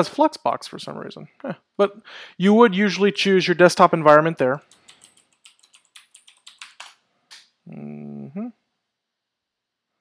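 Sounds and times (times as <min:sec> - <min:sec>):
computer keyboard keystrokes: 0:04.6 - 0:07.0.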